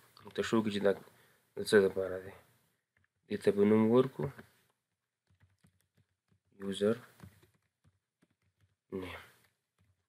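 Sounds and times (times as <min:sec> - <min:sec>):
person speaking: 0:00.0 - 0:04.9, 0:06.4 - 0:07.5, 0:08.6 - 0:10.0
computer keyboard keystrokes: 0:05.2 - 0:06.5, 0:07.2 - 0:10.0.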